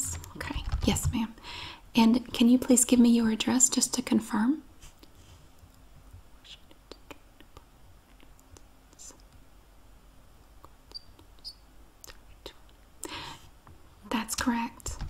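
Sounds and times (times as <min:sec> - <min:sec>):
soft breath: 0:01.4 - 0:01.9, 0:13.0 - 0:13.6.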